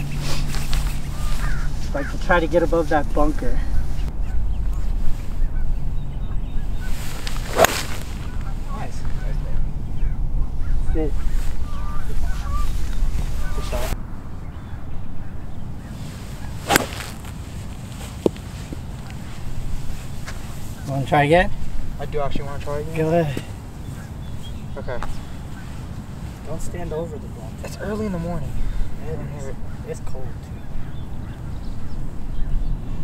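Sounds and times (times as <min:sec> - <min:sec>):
wind rumble on microphone: 0:00.0 - 0:22.5, 0:29.6 - 0:33.0
golf club striking ball: 0:07.3 - 0:08.4, 0:16.6 - 0:17.4.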